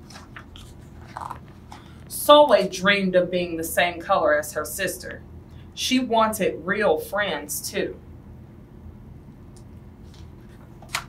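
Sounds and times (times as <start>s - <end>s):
book page turning: 0.0s - 2.1s, 10.0s - 11.0s
low room hum: 0.0s - 11.0s.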